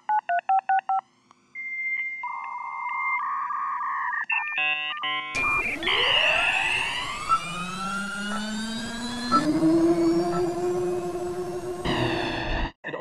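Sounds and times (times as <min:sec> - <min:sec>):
electronic drone with jet-like rush: 0:05.4 - 0:12.7.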